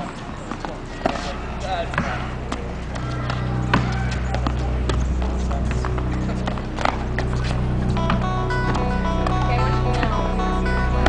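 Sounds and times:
tennis ball hit and bouncing: 0.0s - 1.3s, 1.9s - 5.0s, 5.9s - 10.1s
background music: 0.0s - 11.0s.

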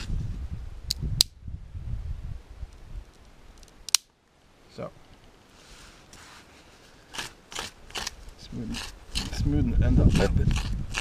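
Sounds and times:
wood snapping: 3.2s - 4.1s
stick scraping on rock: 7.0s - 11.0s.

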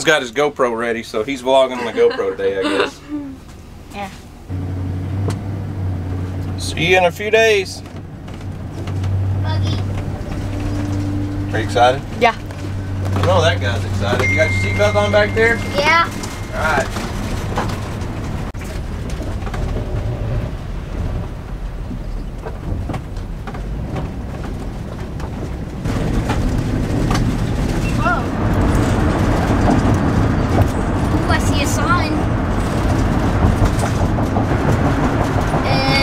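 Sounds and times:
voices: 0.0s - 4.3s, 9.4s - 18.2s, 31.1s - 32.3s, 35.5s - 36.0s
engine and road noise rumble: 0.0s - 36.0s.

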